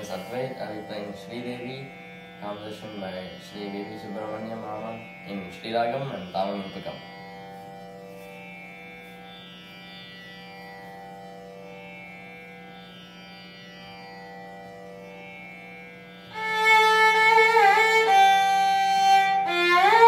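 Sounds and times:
violin playing ornamented phrase: 0.0s - 8.2s, 16.3s - 20.0s
tanpura drone: 0.0s - 20.0s.

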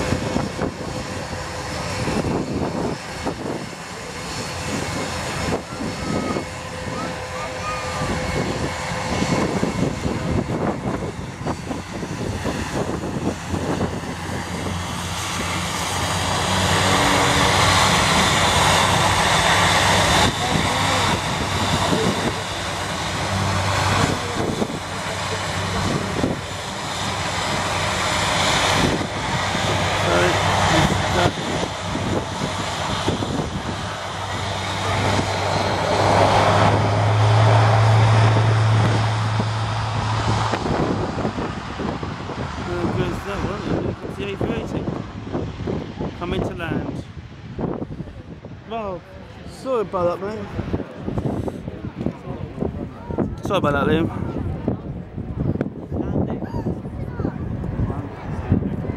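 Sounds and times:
jet engines rushing: 0.0s - 58.9s.

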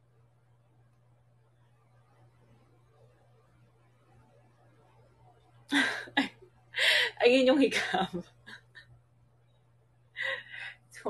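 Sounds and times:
woman speaking: 7.1s - 8.4s
woman breathing in: 10.2s - 10.9s.

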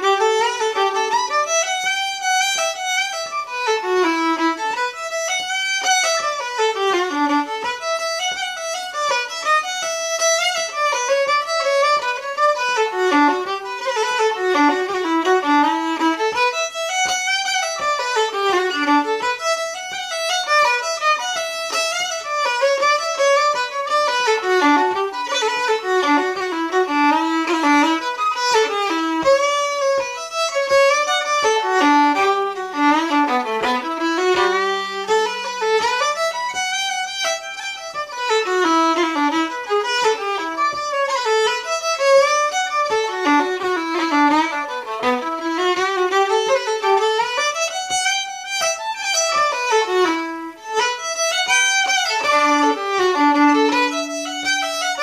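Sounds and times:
solo fiddle playing a reel: 0.0s - 55.0s.

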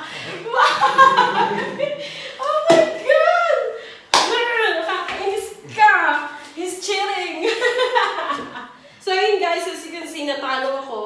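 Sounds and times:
people laughing and shrieking: 0.3s - 3.8s.

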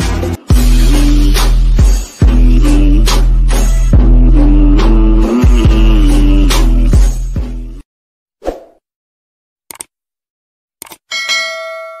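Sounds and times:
bright bell ding: 11.1s - 12.0s.

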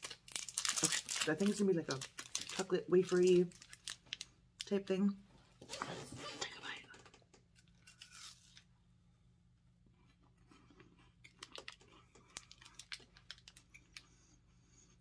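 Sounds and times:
wrapper tearing and crinkling: 0.0s - 4.3s, 7.8s - 8.6s
wafer crunching while chewed: 10.3s - 14.2s.

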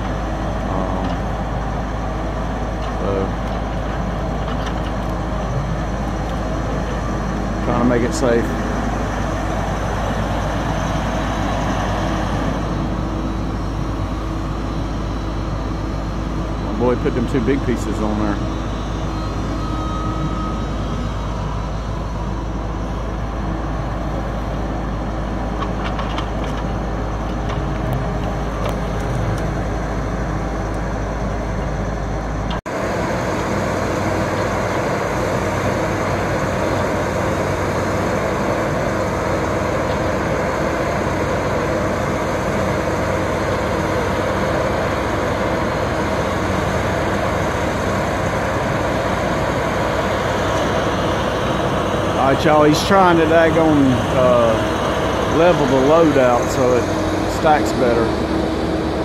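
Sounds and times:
diesel engine under load: 0.0s - 59.0s.

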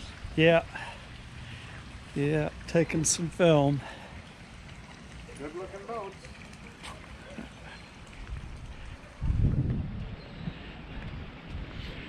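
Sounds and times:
wind buffeting microphone: 7.6s - 12.0s.

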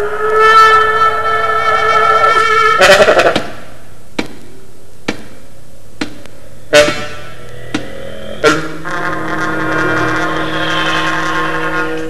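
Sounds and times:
wind instruments droning chord: 6.4s - 12.0s.

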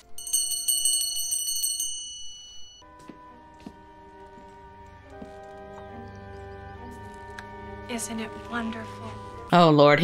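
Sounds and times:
soft music: 0.0s - 10.0s
handbell ringing rapidly: 0.2s - 2.8s.

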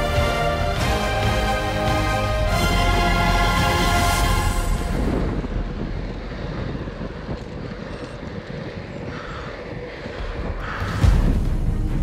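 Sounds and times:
wind buffeting microphone: 4.3s - 11.7s.

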